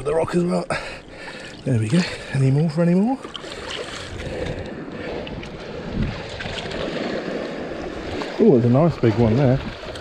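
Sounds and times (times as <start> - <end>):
seawater lapping around rocks: 0.0 - 10.0
wind on microphone: 4.0 - 8.2.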